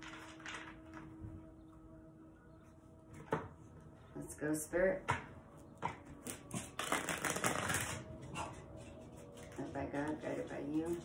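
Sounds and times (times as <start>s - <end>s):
cards being riffle-shuffled: 6.6s - 8.0s.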